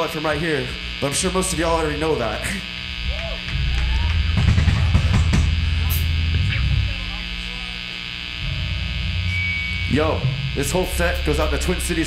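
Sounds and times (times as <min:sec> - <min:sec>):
amplifiers humming and buzzing: 0:00.0 - 0:12.0
low bass notes: 0:00.0 - 0:12.0
drum hits: 0:03.5 - 0:05.8.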